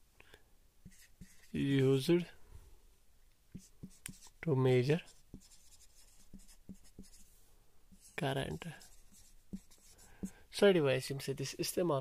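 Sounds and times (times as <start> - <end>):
marker writing on whiteboard: 0.8 - 1.9, 3.5 - 10.4.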